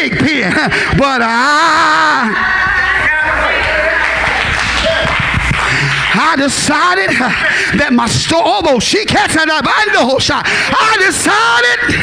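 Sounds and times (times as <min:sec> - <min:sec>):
congregation clapping: 0:02.2 - 0:08.6.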